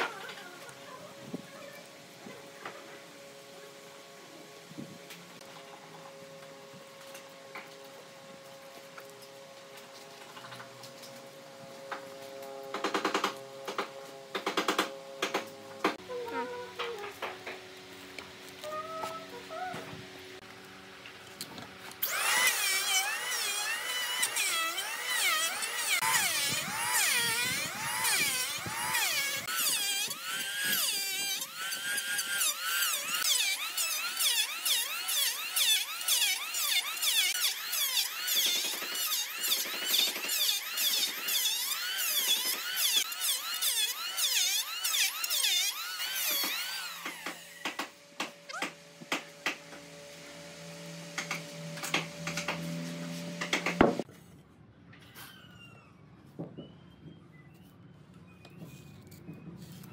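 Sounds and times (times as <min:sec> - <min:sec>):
electric hand planer shaving wood: 0:05.9 - 0:54.1.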